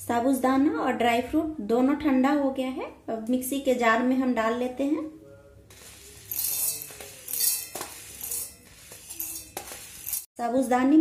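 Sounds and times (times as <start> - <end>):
pearls rattling against metal jar: 5.7 - 10.3.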